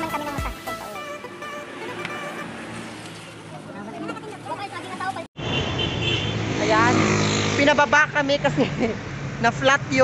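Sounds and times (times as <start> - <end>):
motorcycles passing: 0.0 - 10.0
traffic engine hum: 0.0 - 10.0.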